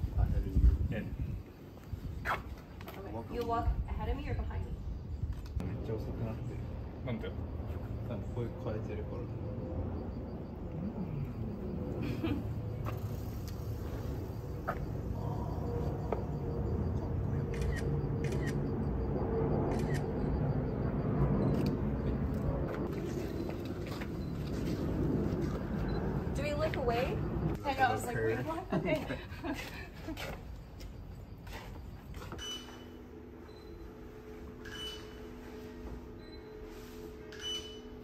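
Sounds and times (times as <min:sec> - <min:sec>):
steady low rumble: 0:03.6 - 0:29.4
voices talking and laughing: 0:26.8 - 0:30.5.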